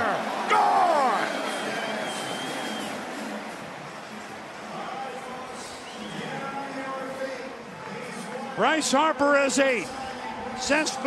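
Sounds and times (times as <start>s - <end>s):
stadium crowd cheering: 0.0s - 11.0s
high whistle-like tones: 1.3s - 3.2s, 5.6s - 6.4s.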